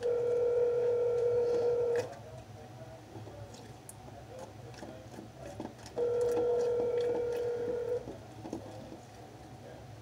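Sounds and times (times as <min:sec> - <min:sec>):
telephone ringback tone: 0:00.0 - 0:02.0, 0:06.0 - 0:08.0.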